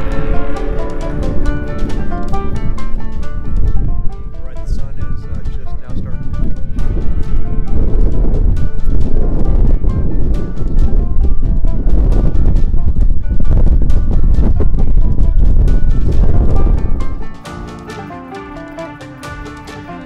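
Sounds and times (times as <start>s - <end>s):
wind buffeting microphone: 0.0s - 17.5s
background music: 0.0s - 20.0s.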